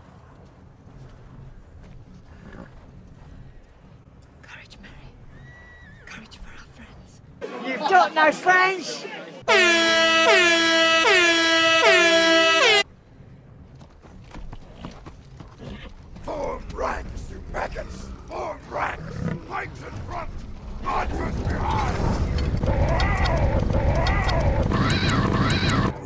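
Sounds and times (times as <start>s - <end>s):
air horn blasts: 9.4s - 12.8s
shouts and growls: 17.7s - 26.0s.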